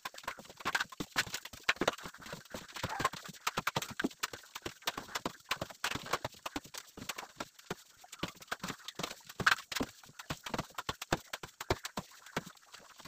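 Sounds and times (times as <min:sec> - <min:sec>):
rapid irregular clicks: 0:00.0 - 0:13.0.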